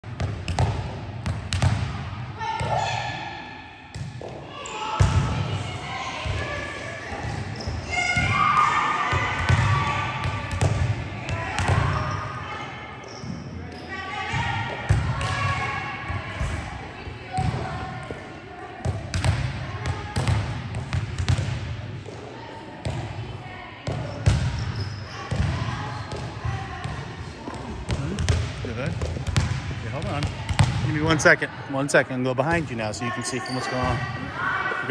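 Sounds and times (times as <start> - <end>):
volleyballs bouncing and struck: 0.0 - 3.0, 7.2 - 12.2, 14.3 - 16.7, 17.3 - 31.2.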